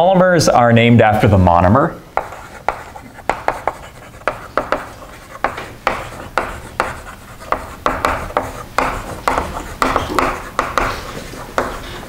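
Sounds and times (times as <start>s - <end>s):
chalk writing on blackboard: 2.2s - 12.0s.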